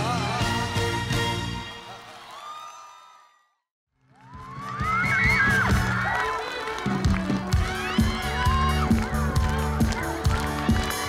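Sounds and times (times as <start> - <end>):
crowd cheering and screaming: 1.7 - 3.5, 4.1 - 11.0
live band playing: 4.6 - 11.0.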